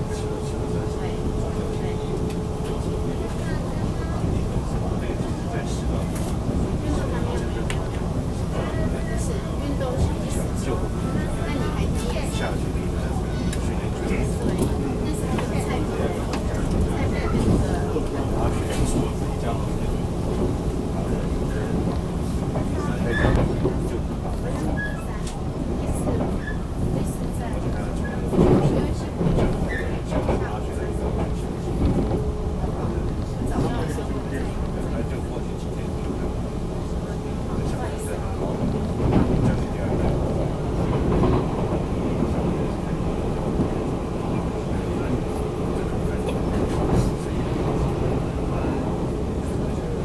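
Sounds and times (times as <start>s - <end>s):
train interior rumble: 0.0s - 50.0s.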